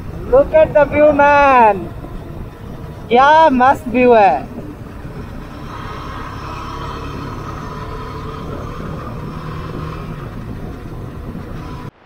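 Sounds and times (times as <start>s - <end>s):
wind on microphone: 0.0s - 11.9s
motorcycle engine and road rumble: 0.0s - 12.0s.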